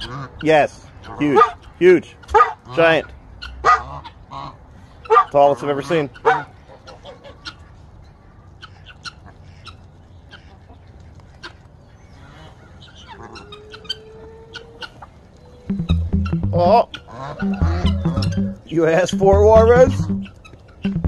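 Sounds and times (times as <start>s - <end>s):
poultry clucking and calling: 0.0s - 21.0s
held tone: 15.7s - 16.8s, 17.4s - 21.0s.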